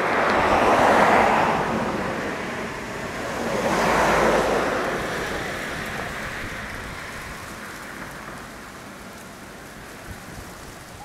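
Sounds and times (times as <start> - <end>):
outdoor background hiss: 2.2 - 11.0.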